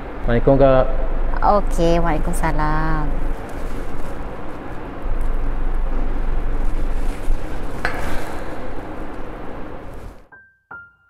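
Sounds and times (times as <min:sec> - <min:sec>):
low rumble of vehicle noise: 0:00.0 - 0:10.3.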